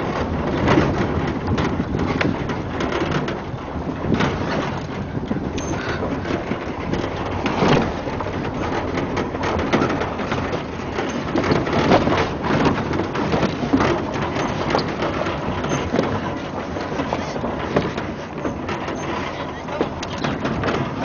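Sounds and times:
rattles and knocks: 0.0 - 21.0
vehicle rumbling on dirt track: 0.0 - 21.0.

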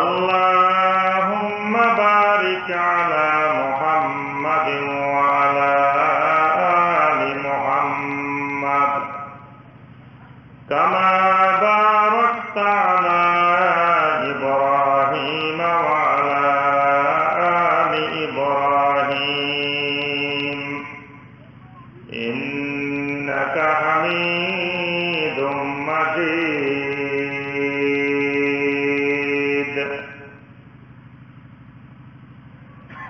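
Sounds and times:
man chanting: 0.0 - 9.6, 10.7 - 30.4.

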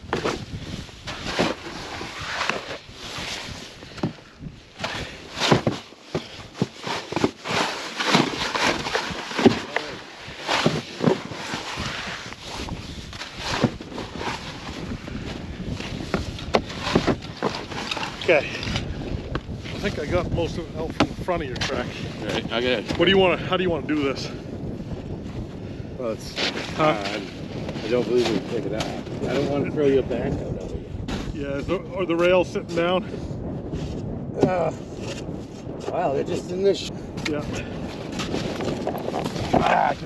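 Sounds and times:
shovel scraping through snow: 0.2 - 3.7.

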